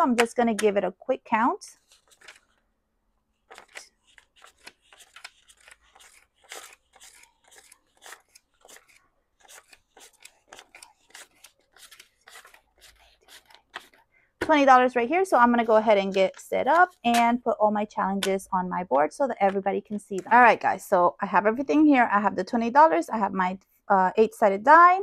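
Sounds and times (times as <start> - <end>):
paper bills flicking: 1.8 - 2.6, 3.5 - 14.0.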